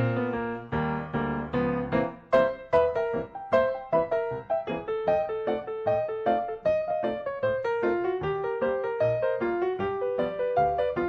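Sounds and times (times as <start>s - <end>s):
piano melody: 0.0s - 11.0s.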